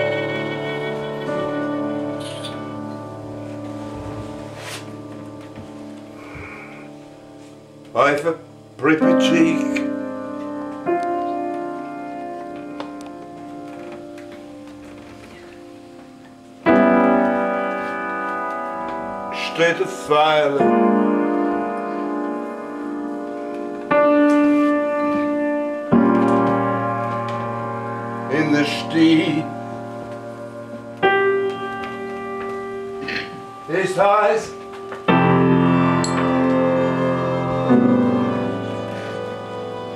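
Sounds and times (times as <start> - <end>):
piano soft held notes: 0.0 - 39.9.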